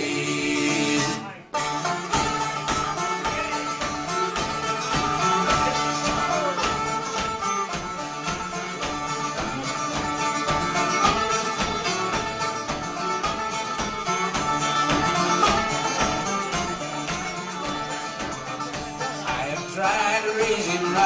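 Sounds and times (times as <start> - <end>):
fiddle: 0.0 - 21.0
strummed acoustic guitars: 0.0 - 21.0.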